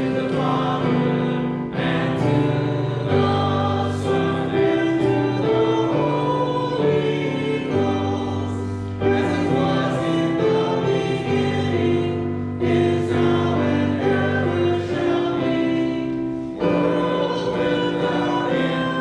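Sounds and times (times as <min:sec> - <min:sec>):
choir singing a hymn: 0:00.0 - 0:19.0.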